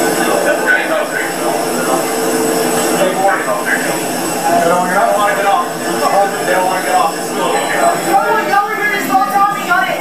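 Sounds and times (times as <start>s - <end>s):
machinery drone: 0.0s - 10.0s.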